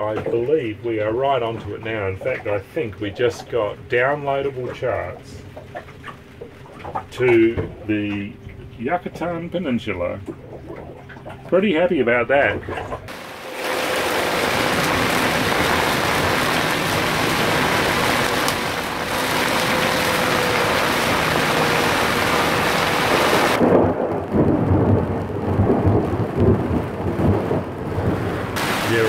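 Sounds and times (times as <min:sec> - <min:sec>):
heavy rain on a roof: 0:13.1 - 0:29.0
rolling thunder: 0:13.1 - 0:29.0.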